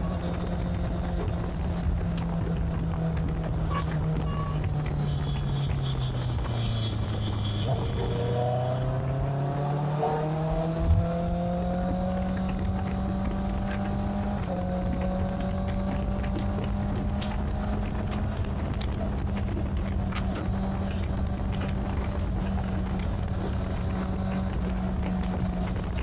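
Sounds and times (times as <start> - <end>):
motorcycle engine accelerating: 0.0 - 26.0
wind noise: 0.0 - 26.0.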